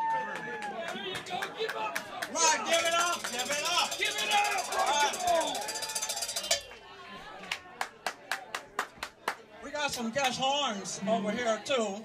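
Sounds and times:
people talking over one another: 0.3 - 12.0
fast ticking rattle: 2.7 - 6.7.

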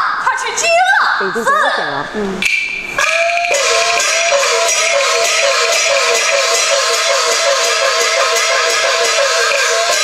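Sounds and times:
percussion strokes: 2.3 - 10.0
fast falling notes: 2.4 - 10.0.

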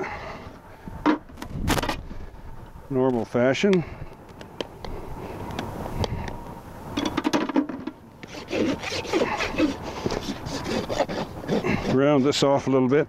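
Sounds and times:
hoof rasp scraping: 8.2 - 12.7.

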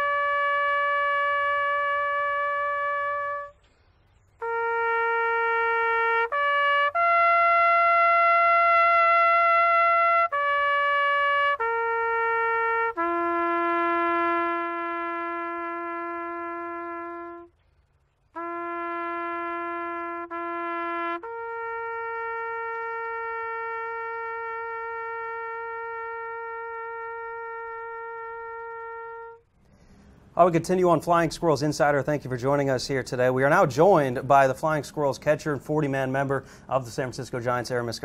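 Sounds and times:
solo trumpet long note: 0.0 - 3.6, 4.4 - 17.6, 18.3 - 30.0.

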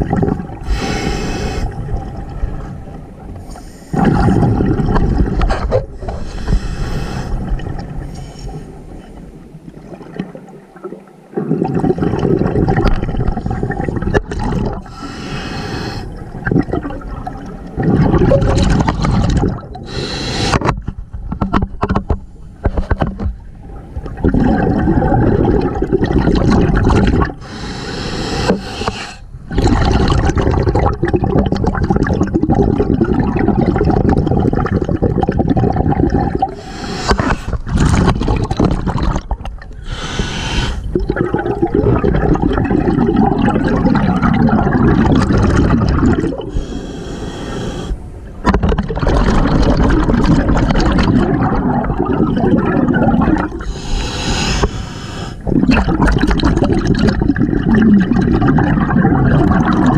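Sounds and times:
water churning and bubbling underwater: 0.0 - 59.9.

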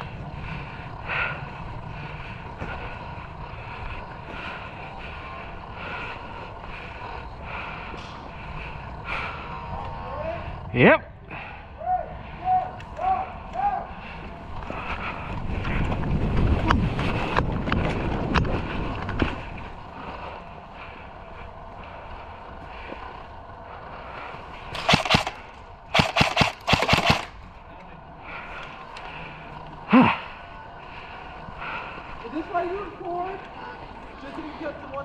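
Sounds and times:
low rumble: 0.0 - 32.3
airsoft gun firing bursts: 24.7 - 27.4.

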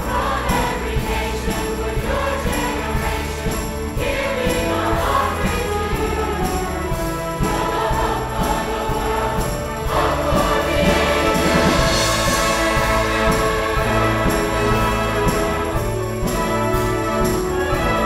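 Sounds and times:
children's choir singing: 0.0 - 18.0
orchestra with violins: 0.0 - 18.0
steady beat: 0.0 - 18.0.

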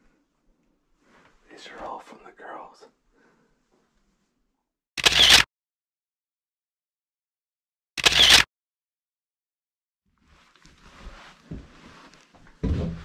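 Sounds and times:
low murmured voice: 1.5 - 2.9
camera shutter click: 5.0 - 5.5, 8.0 - 8.5.

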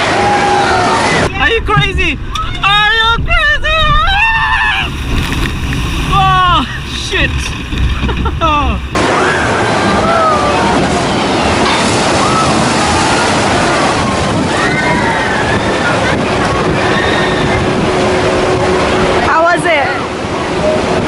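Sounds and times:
water rushing down a chute: 0.0 - 21.0
low rumble: 0.7 - 21.0
riders shouting and whooping: 3.3 - 4.9.

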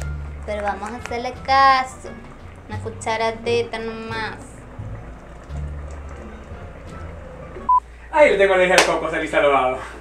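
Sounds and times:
low background music: 0.0 - 9.5.

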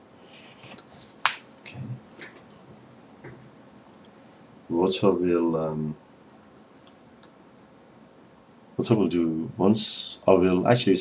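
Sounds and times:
faint soft rustles: 0.2 - 1.3.

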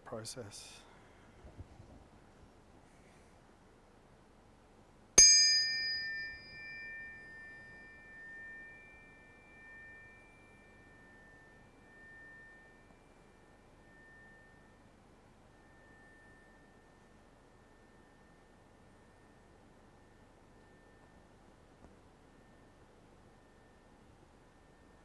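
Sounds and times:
tuning forks ringing: 5.2 - 25.0.

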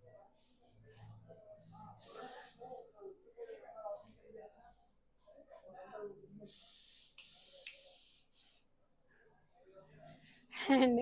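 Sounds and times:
paint spray gun hissing: 2.0 - 2.6, 6.5 - 8.6.

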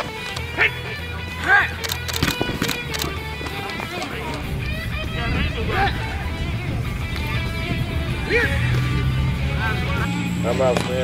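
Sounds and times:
music with sustained tones: 0.0 - 11.0
indistinct voices: 2.7 - 11.0.

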